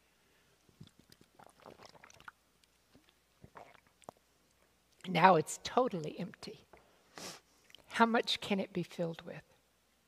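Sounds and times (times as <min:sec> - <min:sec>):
person gulping water: 0:00.8 - 0:02.4, 0:03.0 - 0:04.3.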